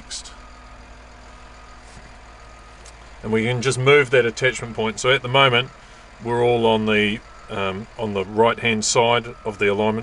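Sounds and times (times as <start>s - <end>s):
bulldozer engine idling: 0.0s - 10.0s.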